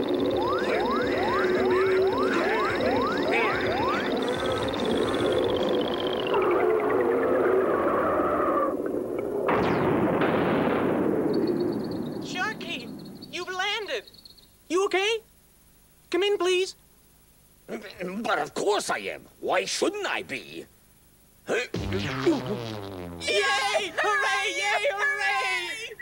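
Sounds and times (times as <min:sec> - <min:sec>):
long falling whistle: 0:00.0 - 0:08.8
steady held tones: 0:00.0 - 0:09.6
noisy crash: 0:09.4 - 0:12.2, 0:21.8 - 0:23.3.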